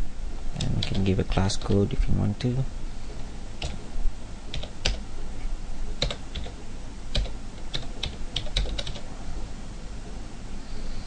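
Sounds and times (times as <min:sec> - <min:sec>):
computer keyboard typing: 0:00.6 - 0:01.1, 0:03.6 - 0:03.8, 0:04.5 - 0:05.0, 0:06.0 - 0:09.1.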